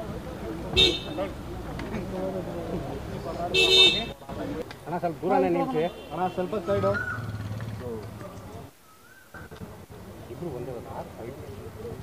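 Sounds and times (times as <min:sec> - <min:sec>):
people's voices: 0:00.0 - 0:12.0
car horn honking: 0:00.7 - 0:01.3, 0:03.5 - 0:04.2.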